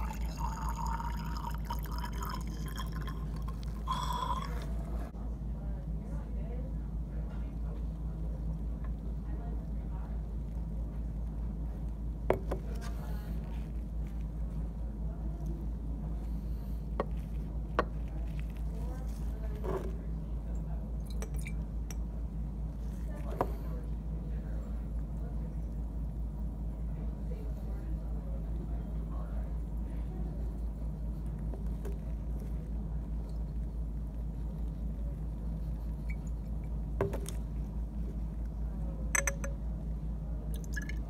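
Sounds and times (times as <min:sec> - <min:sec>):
water trickling and dripping: 0:00.0 - 0:04.6
water squirting into glass: 0:00.0 - 0:04.8
low electrical hum: 0:00.0 - 0:41.0
glass bottles clinking: 0:39.2 - 0:39.6.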